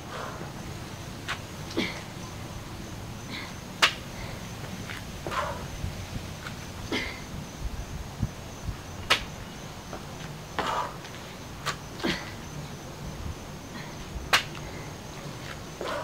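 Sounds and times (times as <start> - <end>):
hands and feet slapping a mat: 3.8 - 4.1, 9.0 - 12.2, 14.3 - 14.7.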